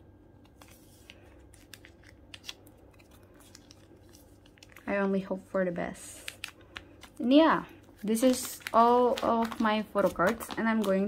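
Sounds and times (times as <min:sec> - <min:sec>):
plastic sleeves crinkling: 0:00.4 - 0:11.0.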